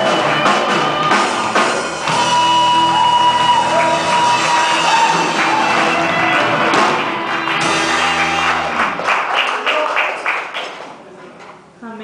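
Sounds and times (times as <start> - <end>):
worship band playing: 0.0 - 10.6.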